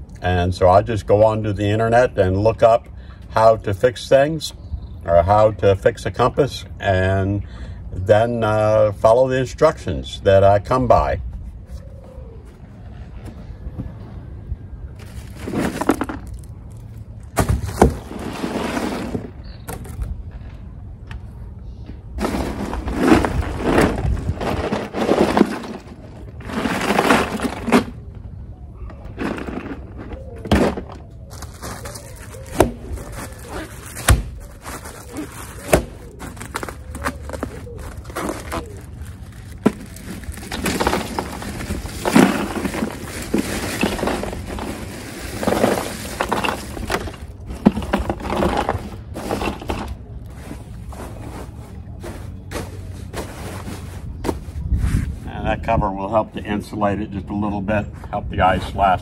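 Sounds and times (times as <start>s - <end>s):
ice cubes crunching and rattling: 15.0s - 16.9s, 22.2s - 28.0s, 29.2s - 51.4s.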